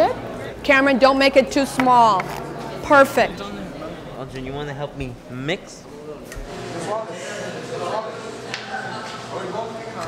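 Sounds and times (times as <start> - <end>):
faint indistinct voices: 0.0 - 10.0
steady room hum: 0.0 - 10.0.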